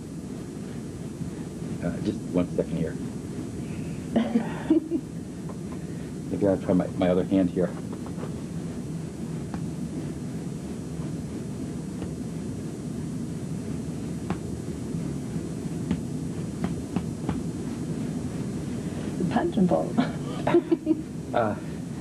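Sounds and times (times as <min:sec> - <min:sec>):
low room rumble: 0:00.0 - 0:22.0.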